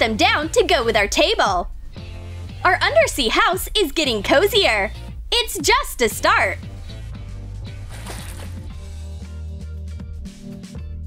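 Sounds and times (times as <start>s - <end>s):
background music with low bass: 0.0s - 11.0s.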